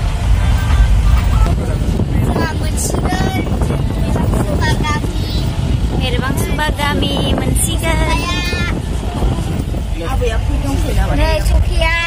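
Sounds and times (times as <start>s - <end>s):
engine and road rumble: 0.0s - 12.0s.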